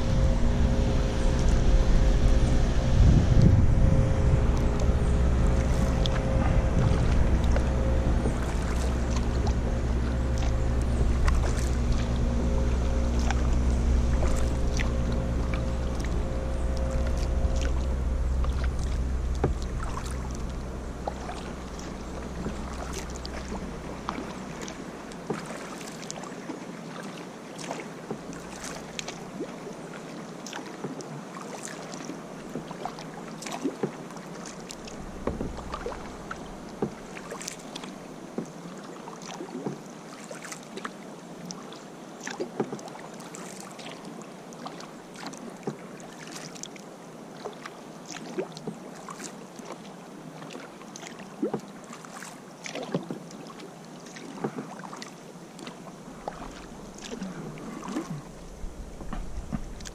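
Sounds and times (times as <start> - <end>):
wind rumble on microphone: 0.0 - 25.7, 34.7 - 38.6, 56.0 - 59.9
paddle splashing in water: 0.0 - 59.9
water washing along hull: 0.0 - 59.9.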